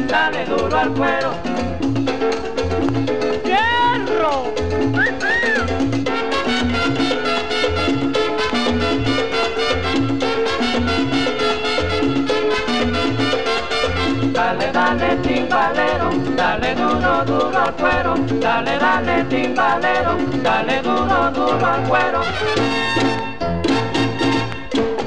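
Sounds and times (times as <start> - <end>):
person singing: 0.0 - 1.5, 14.4 - 22.4
band melody: 0.0 - 25.0
bass line: 0.0 - 25.0
percussion: 0.0 - 25.0.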